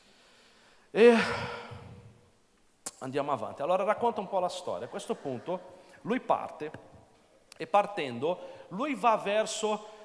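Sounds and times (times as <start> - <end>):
man's drawn-out vocal sigh: 1.0 - 2.1
man speaking: 2.9 - 6.9, 7.6 - 9.9.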